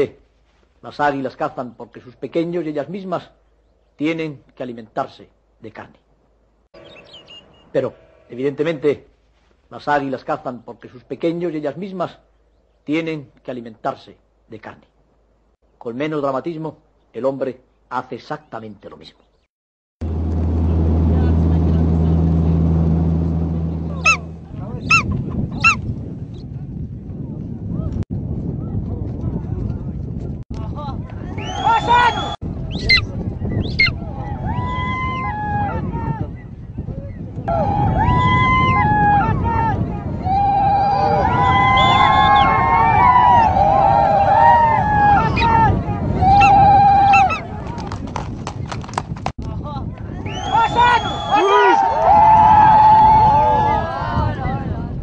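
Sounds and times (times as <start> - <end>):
loud bird calls: 6.8 - 8.2
low motor hum: 20.0 - 25.0.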